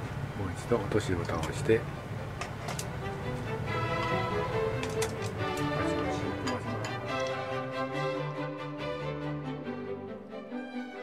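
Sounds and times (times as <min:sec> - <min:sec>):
low steady hum: 0:00.0 - 0:10.4
background music with held notes: 0:02.6 - 0:11.0.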